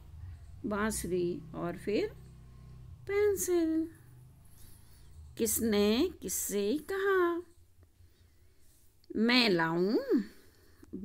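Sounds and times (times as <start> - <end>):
faint low hum: 0.0 - 11.0
woman speaking: 0.6 - 2.2, 3.0 - 4.1, 5.4 - 7.6, 9.1 - 11.0.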